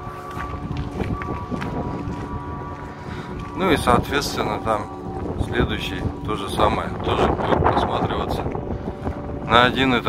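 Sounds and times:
footsteps on pavement: 0.0s - 10.0s
soft background music: 0.0s - 10.0s
wind rumbling on microphone: 0.0s - 10.0s.

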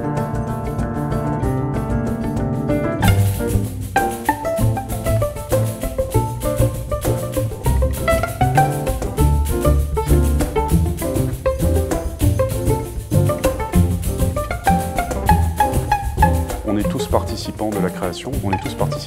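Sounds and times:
jazz chamber ensemble playing: 0.0s - 19.0s
percussion strikes: 0.0s - 19.0s.

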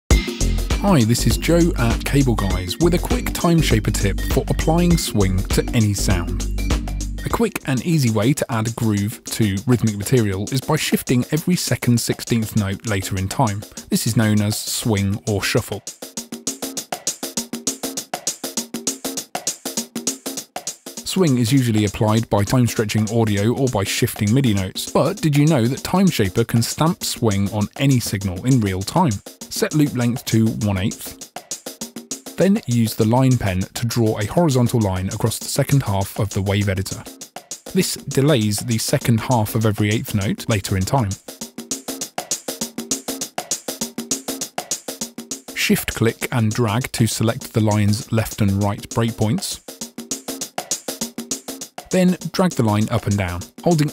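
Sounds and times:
conga loop with swing feel: 0.1s - 53.9s.

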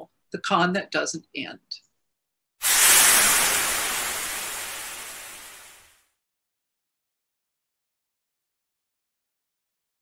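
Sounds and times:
rushing hiss sound effect: 2.6s - 6.0s.

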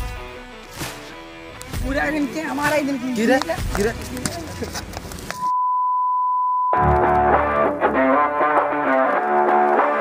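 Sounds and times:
guitar music: 0.0s - 4.8s, 6.8s - 10.0s
steady electronic beep: 5.4s - 6.8s.

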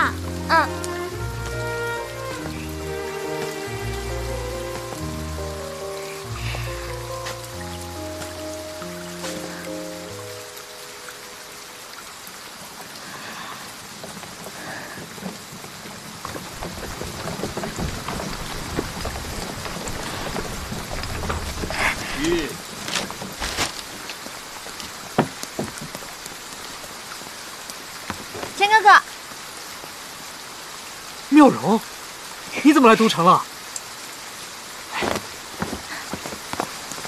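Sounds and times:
rain falling: 0.0s - 37.0s.

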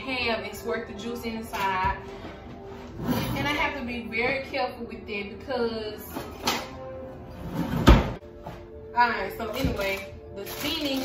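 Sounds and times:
drawer closing with a thunk: 7.4s - 8.2s.

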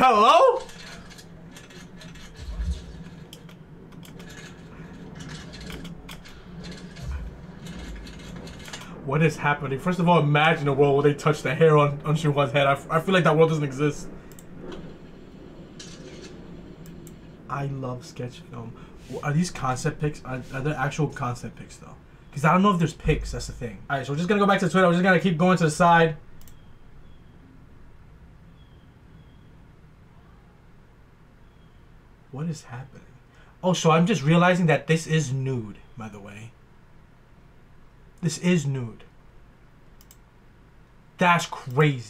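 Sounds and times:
man speaking: 0.0s - 0.7s, 9.0s - 14.2s, 17.5s - 26.2s, 32.3s - 36.6s, 38.2s - 39.1s, 41.2s - 42.0s
faint room noise: 0.0s - 42.0s
steady low hum: 0.0s - 42.0s
computer mouse click: 26.4s - 26.7s, 39.9s - 40.2s.

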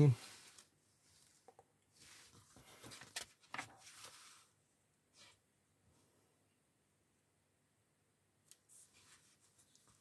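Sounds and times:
magazine pages rustling: 2.0s - 4.5s.

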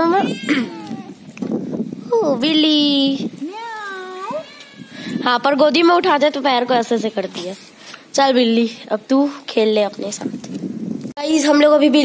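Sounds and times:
kitten meowing: 0.1s - 1.2s.

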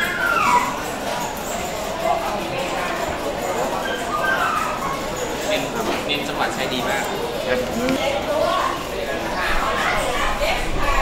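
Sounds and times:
dog whimpering: 0.0s - 1.0s, 3.8s - 5.2s
background chatter: 0.0s - 11.0s.

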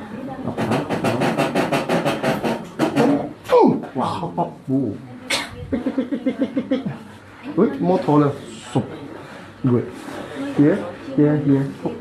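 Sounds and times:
fast drum roll: 0.5s - 3.2s.

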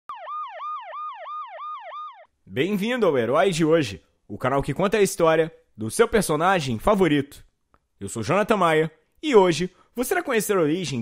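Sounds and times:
siren-like sound effect: 0.1s - 2.3s.

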